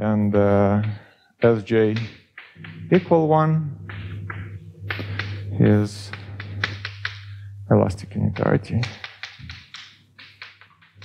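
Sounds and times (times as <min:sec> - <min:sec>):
chalk tapping on blackboard: 0:00.8 - 0:07.4, 0:08.3 - 0:11.0.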